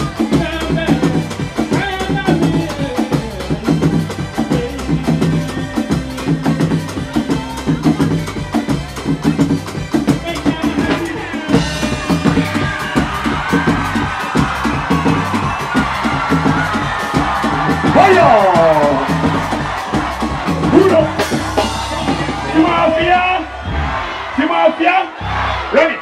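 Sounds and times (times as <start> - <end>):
guitar: 0.0 - 24.3
bass line: 0.0 - 25.8
fast drum beat: 0.0 - 25.8
live band dance music: 0.0 - 26.0.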